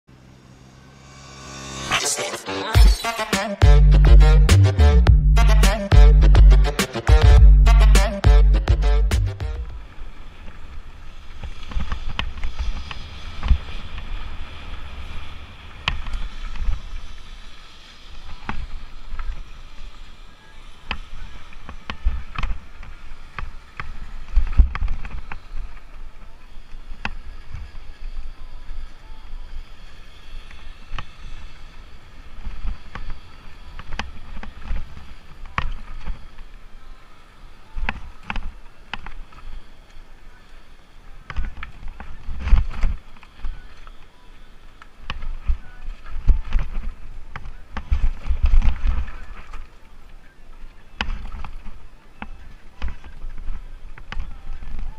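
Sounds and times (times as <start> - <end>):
wind rumble on microphone: 9.6 - 36.6.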